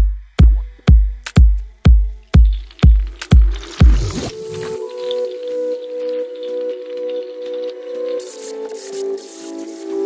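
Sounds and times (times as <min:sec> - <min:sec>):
kick drum beats: 0:00.0 - 0:04.3.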